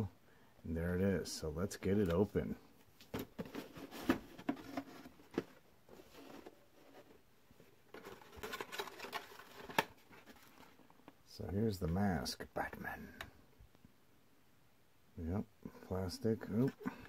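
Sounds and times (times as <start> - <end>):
cardboard box and plastic mask handled: 1.9 - 11.2, 16.3 - 17.0.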